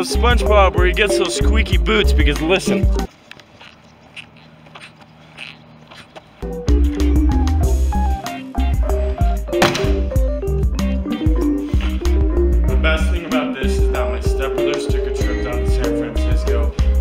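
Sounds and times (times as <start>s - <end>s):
shoes squeaking on sidewalk: 0.0s - 16.9s
hip-hop music with heavy beat: 6.5s - 17.0s.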